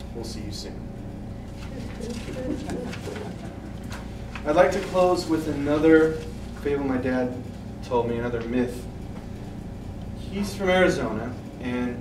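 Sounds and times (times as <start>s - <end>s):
paper sheets rustling: 1.5s - 6.8s.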